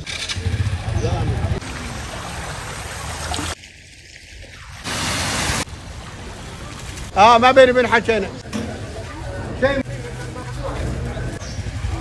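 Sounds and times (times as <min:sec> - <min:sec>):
murmur of voices: 0:08.4 - 0:12.0.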